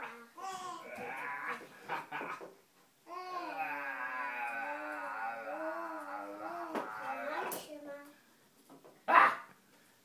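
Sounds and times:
baby's high-pitched vocal sounds: 0:00.0 - 0:01.0, 0:03.1 - 0:07.6.

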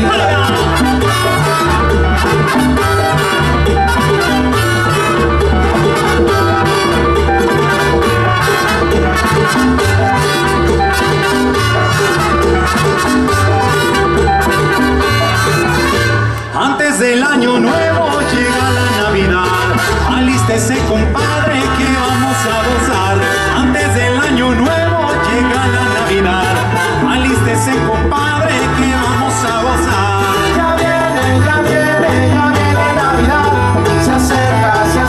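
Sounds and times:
tropical dance band playing: 0:00.0 - 0:35.0
trumpet-led brass section: 0:00.0 - 0:35.0.

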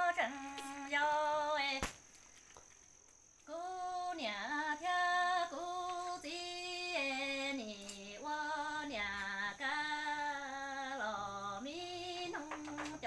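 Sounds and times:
woman singing unaccompanied: 0:00.0 - 0:02.0, 0:03.4 - 0:13.0.

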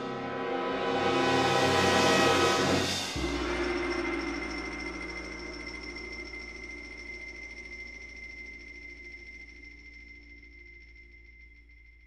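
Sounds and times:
sustained ringing tones: 0:03.2 - 0:12.0.

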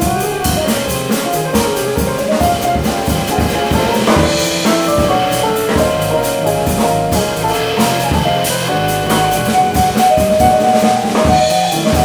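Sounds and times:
drum kit with cymbal strokes: 0:00.0 - 0:12.0
electric bass guitar: 0:00.0 - 0:12.0
keyboard piano sound: 0:00.0 - 0:12.0.

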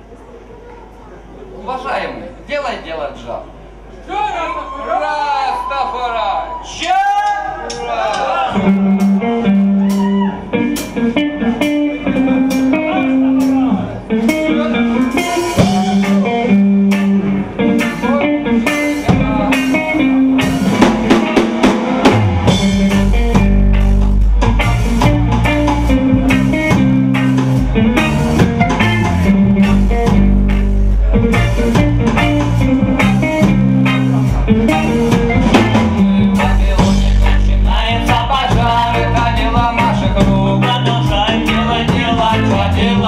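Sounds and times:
drum kit: 0:07.7 - 0:43.0
electric guitars: 0:08.4 - 0:43.0
heavy bass line: 0:08.6 - 0:43.0.

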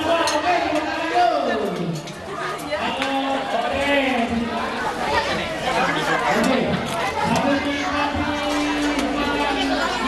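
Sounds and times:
crowd chatting: 0:00.0 - 0:10.0.

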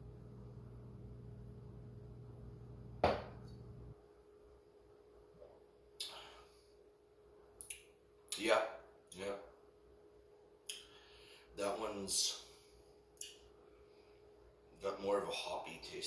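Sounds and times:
glass set down on counter: 0:03.0 - 0:03.4.

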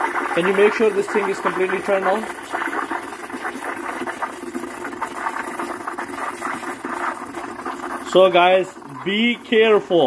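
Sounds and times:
steam wand frothing milk: 0:00.0 - 0:10.0.

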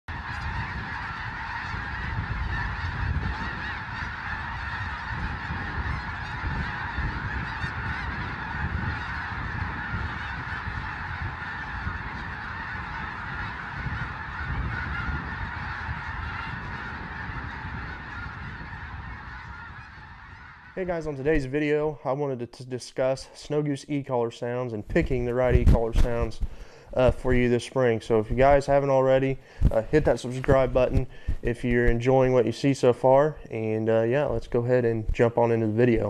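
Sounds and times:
flock of geese honking: 0:00.1 - 0:36.0.

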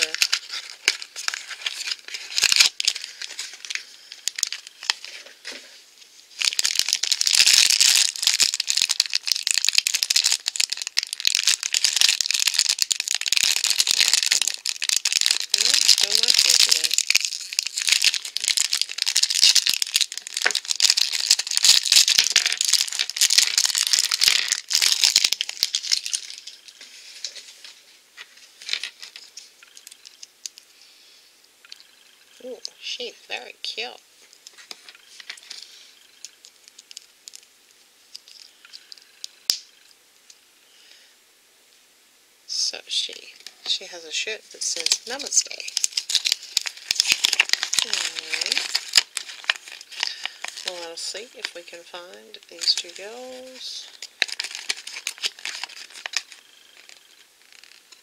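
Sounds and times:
plastic wrapper crinkling: 0:00.0 - 0:30.7, 0:31.6 - 0:39.9, 0:42.9 - 0:58.0.

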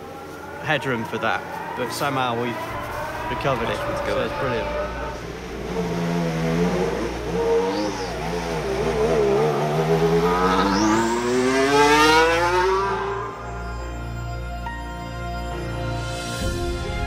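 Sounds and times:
racing car engine accelerating: 0:01.4 - 0:14.2.

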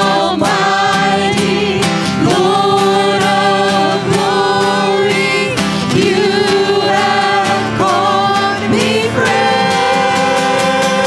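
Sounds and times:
acoustic guitar: 0:00.0 - 0:11.0
drums: 0:00.0 - 0:11.0
voices singing: 0:00.0 - 0:11.0.

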